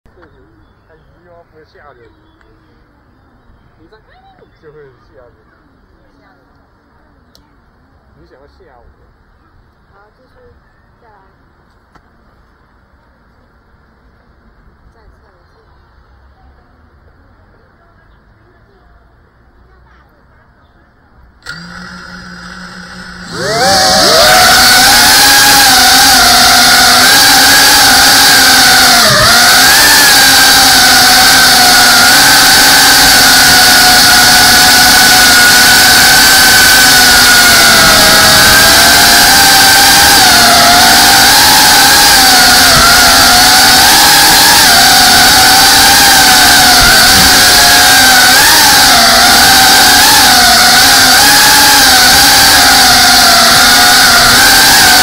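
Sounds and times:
quadcopter motors whining: 21.4 - 55.0.

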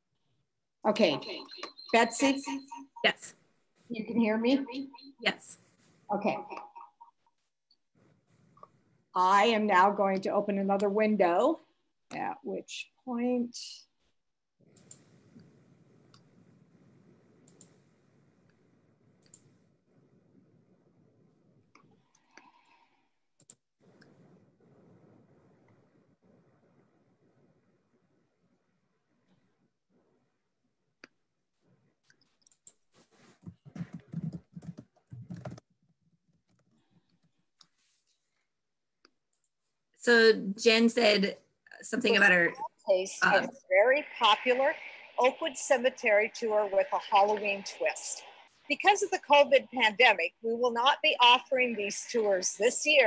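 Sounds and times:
faint clicks: 17.3 - 18.6, 19.2 - 19.6
computer keyboard typing: 33.7 - 35.6.

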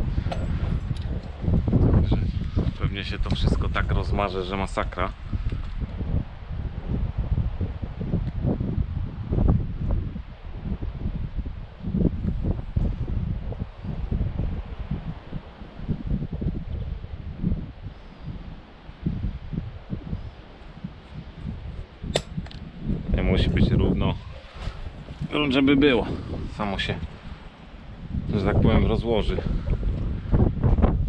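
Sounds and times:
wind buffeting microphone: 0.0 - 31.0
sharp clicks: 22.1 - 22.6.

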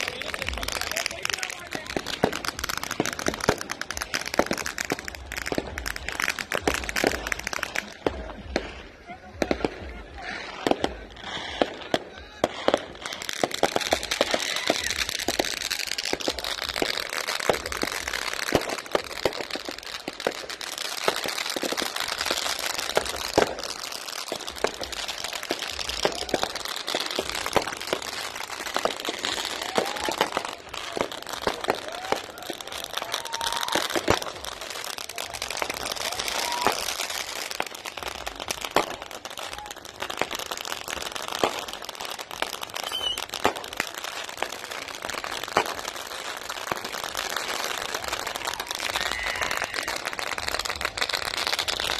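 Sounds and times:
firecrackers banging and popping: 0.0 - 51.9.

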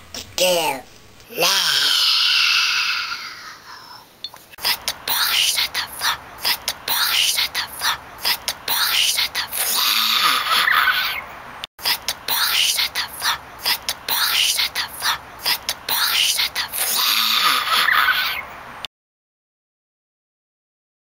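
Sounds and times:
girl's hoarse cry: 1.3 - 3.6, 9.7 - 11.1, 16.9 - 18.4
girl whispering: 3.2 - 10.6, 11.8 - 17.8.

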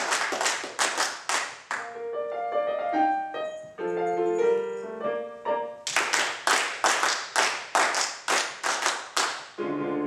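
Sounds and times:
choir clapping in time: 0.0 - 1.9, 5.9 - 9.6
piano: 0.0 - 10.0.

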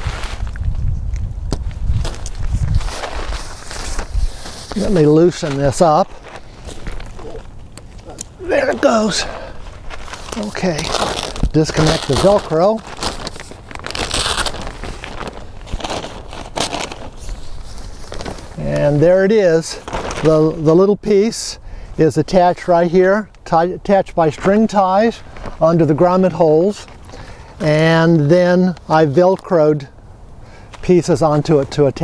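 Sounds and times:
plastic tarp crinkling: 0.0 - 0.6, 2.0 - 7.5, 8.5 - 20.8
velcro strips pulled apart: 10.0 - 17.6.

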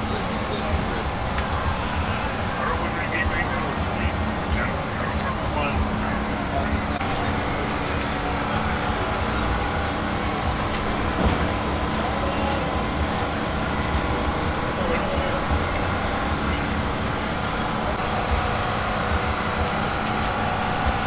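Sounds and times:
constant hum: 0.0 - 21.0
faint indistinct voices talking: 0.0 - 21.0
steady low rumble: 0.0 - 21.0.

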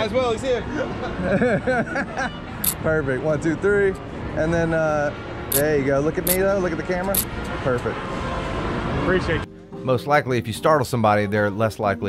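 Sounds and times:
men talking: 0.0 - 2.0, 2.6 - 8.0, 9.0 - 12.0
city street background noise: 0.0 - 12.0
man laughing: 0.7 - 2.4.

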